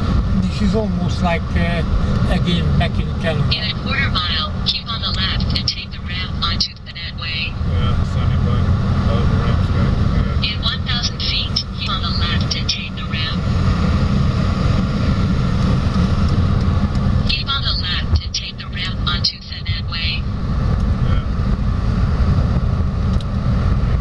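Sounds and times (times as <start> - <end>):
car cabin road and engine rumble: 0.0 - 24.0.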